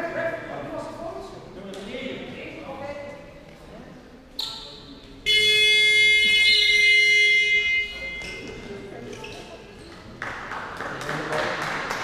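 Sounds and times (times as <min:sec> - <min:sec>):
buzzer blip: 0:05.2 - 0:08.6
loud buzzer blast: 0:05.3 - 0:08.4.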